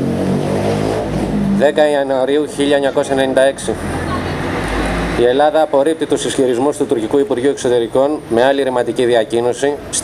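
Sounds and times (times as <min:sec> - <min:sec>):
vehicle engine running: 0:00.0 - 0:05.2
man speaking: 0:01.5 - 0:03.9.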